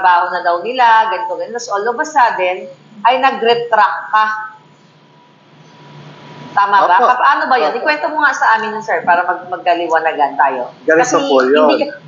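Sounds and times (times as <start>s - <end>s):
background hiss: 0.0s - 12.0s
low hum: 0.0s - 12.0s
person speaking: 5.8s - 12.0s
faint high-pitched tone: 10.9s - 12.0s.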